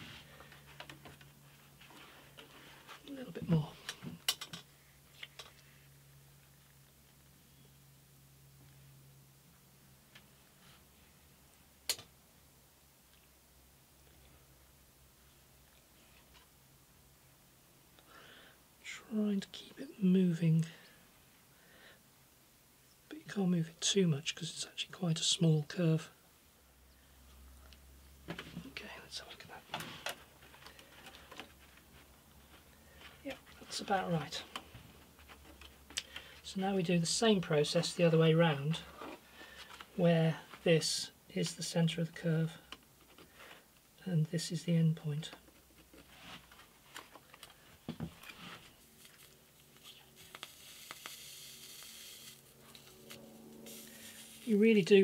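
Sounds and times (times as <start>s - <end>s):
faint low hum: 0.0s - 55.0s.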